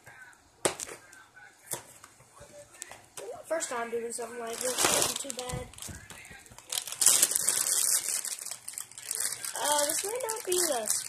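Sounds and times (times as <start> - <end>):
plastic bag crinkling: 4.4 - 11.0.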